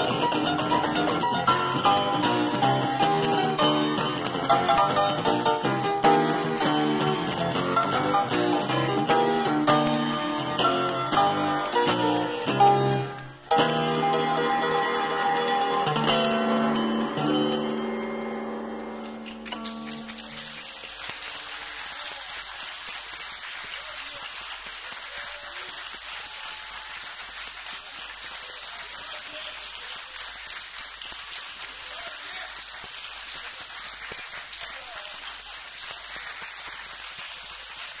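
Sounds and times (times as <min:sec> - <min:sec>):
audience applause: 0:00.0 - 0:38.0.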